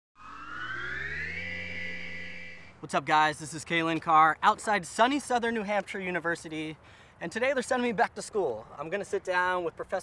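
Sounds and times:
synthesized tone gliding upward: 0:00.2 - 0:03.2.

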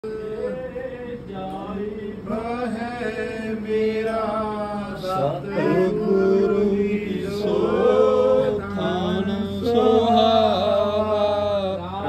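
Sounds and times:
devotional chanting voice: 0:00.0 - 0:12.0.

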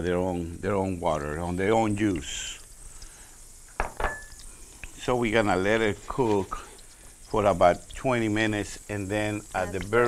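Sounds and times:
faint ticks: 0:01.2 - 0:10.0
utensil clinking on saucepan: 0:03.8 - 0:04.4.

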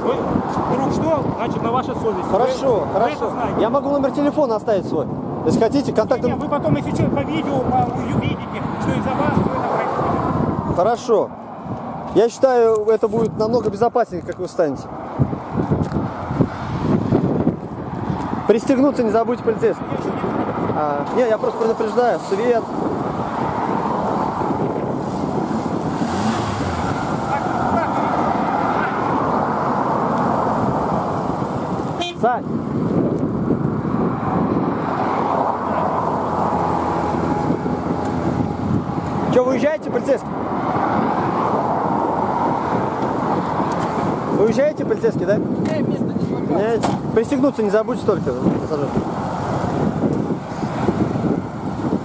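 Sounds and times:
road traffic: 0:00.0 - 0:52.0.

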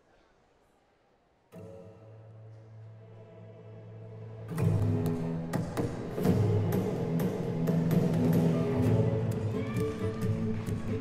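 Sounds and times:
music with percussive hits: 0:04.5 - 0:11.0.

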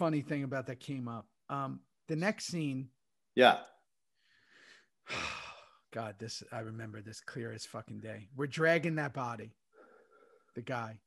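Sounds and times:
man sighing: 0:05.0 - 0:05.8.

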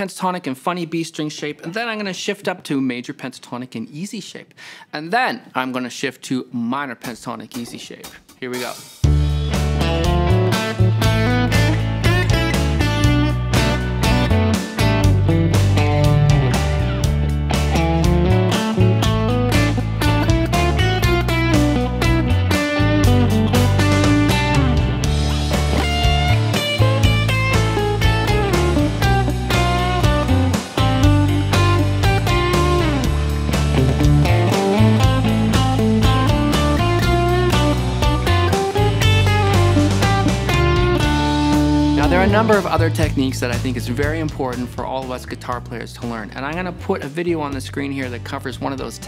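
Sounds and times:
backing track with bass and drums: 0:07.0 - 0:49.0
electric guitar lead: 0:09.1 - 0:43.0.

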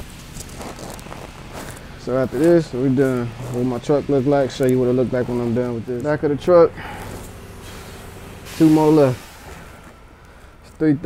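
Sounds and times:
rustling: 0:00.0 - 0:04.8
faint footsteps: 0:00.0 - 0:08.5
low steady hum: 0:00.0 - 0:11.0.

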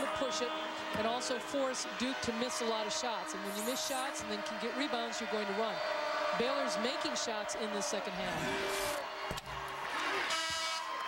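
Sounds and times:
crowd noise: 0:00.0 - 0:11.0.

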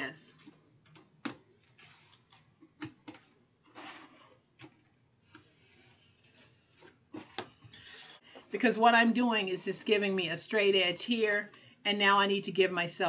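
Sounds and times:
cardboard rubbing: 0:01.6 - 0:02.4, 0:03.7 - 0:08.2.

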